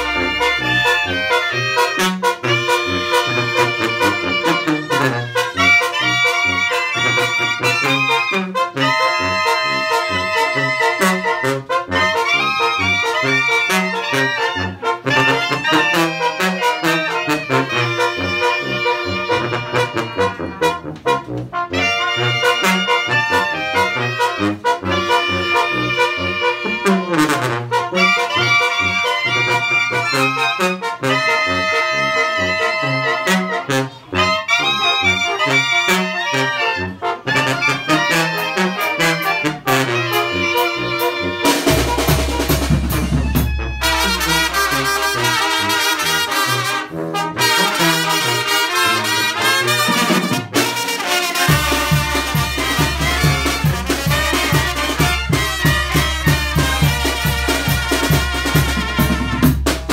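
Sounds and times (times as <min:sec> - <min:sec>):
conga drums: 0:00.0 - 0:08.8, 0:37.3 - 0:46.8, 0:47.5 - 0:59.9
brass note sliding down: 0:00.0 - 0:59.7
brass band playing a tune: 0:00.0 - 0:59.9.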